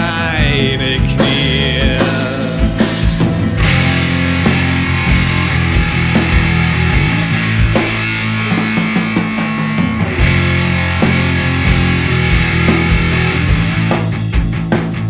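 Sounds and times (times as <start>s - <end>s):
instrumental rock band: 0.0s - 15.0s.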